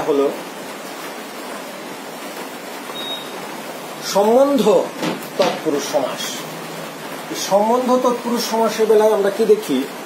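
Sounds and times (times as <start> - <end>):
steady background hiss: 0.0 - 10.0
man's voice: 7.3 - 10.0.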